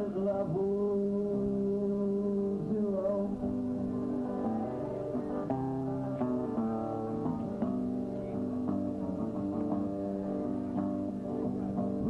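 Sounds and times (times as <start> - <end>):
guitar playing sustained notes: 0.0 - 12.0.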